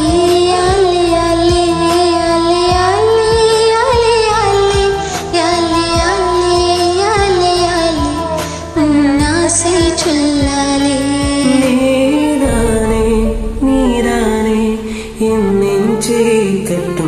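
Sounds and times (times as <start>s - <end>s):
karaoke backing track: 0.0s - 17.0s.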